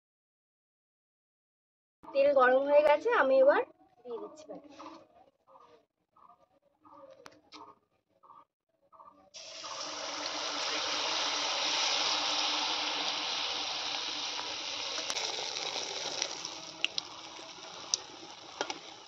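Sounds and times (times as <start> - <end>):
batter sizzling in hot oil: 9.4 - 19.0.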